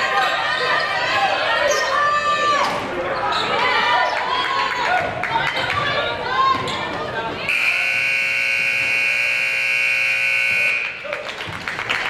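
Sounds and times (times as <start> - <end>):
players' voices echoing: 0.0 - 11.3.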